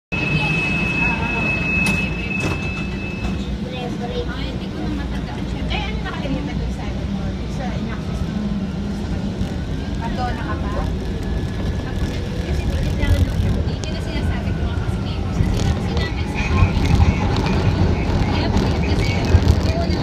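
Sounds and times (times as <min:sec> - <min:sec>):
steady high whine: 0:00.1 - 0:19.8
elevated train rumbling on track: 0:00.1 - 0:20.0
voices talking: 0:00.2 - 0:20.0.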